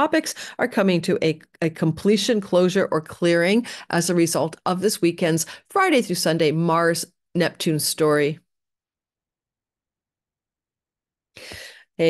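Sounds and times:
woman's intake of breath: 11.4s - 11.9s.

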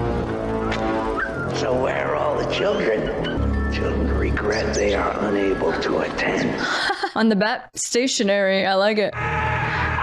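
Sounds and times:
film score music: 0.0s - 6.6s.

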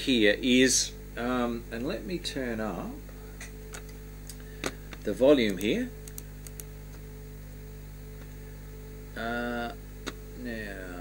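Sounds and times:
electrical hum: 0.0s - 11.0s
computer mouse clicks: 5.4s - 6.7s.

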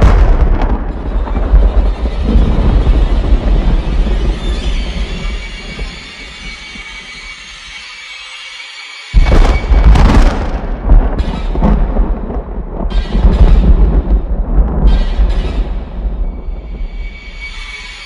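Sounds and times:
loud musical hit: 9.2s - 14.2s.

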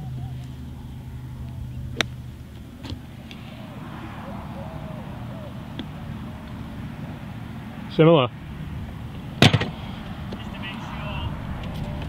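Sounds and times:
low outdoor rumble: 0.0s - 12.0s
voiced exclamation: 3.4s - 6.8s.

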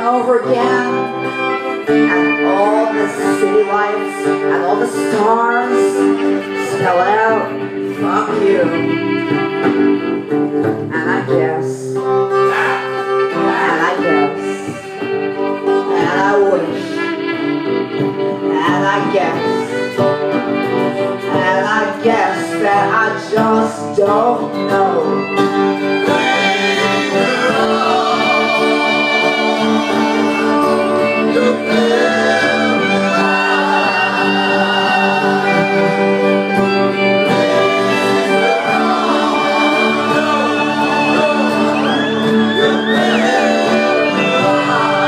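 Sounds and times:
bowed violin: 0.0s - 45.0s
electric guitar: 0.0s - 45.0s
plucked guitar line: 0.0s - 45.0s
men singing in harmony: 26.0s - 45.0s.

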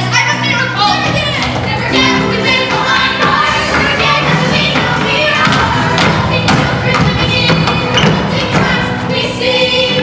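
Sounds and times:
backing track: 0.0s - 10.0s
young singers performing: 0.0s - 10.0s
heavy beat thuds: 1.0s - 9.0s.

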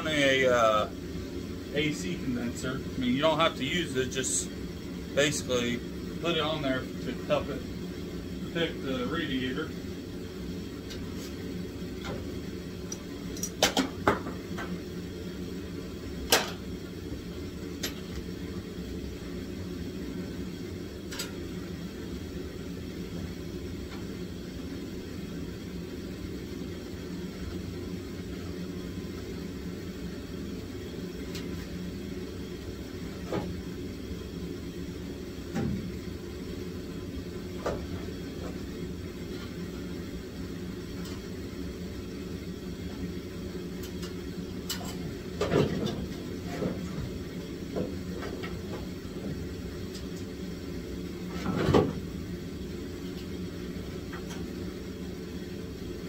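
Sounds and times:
low mechanical hum: 0.0s - 56.0s.

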